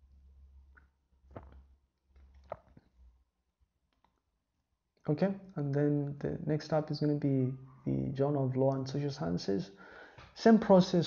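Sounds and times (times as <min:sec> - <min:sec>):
low steady hum: 0:00.0 - 0:02.5.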